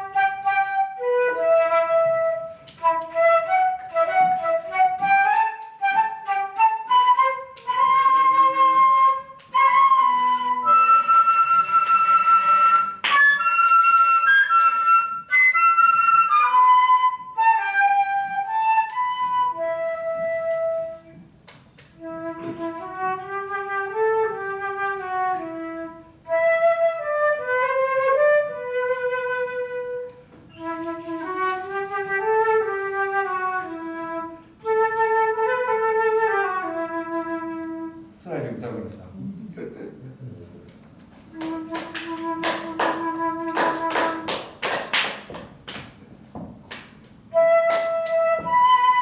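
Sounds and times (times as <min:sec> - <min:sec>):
flute-like melody: 0:00.0 - 0:38.2, 0:41.2 - 0:44.6, 0:47.2 - 0:49.0.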